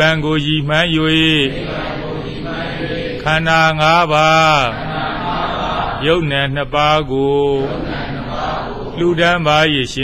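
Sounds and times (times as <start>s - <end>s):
man chanting in monotone: 0.0s - 10.0s.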